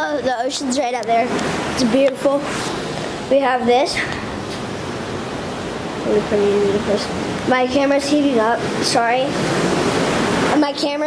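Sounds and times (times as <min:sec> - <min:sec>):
ocean surf rushing: 0:01.2 - 0:03.4, 0:05.2 - 0:11.0.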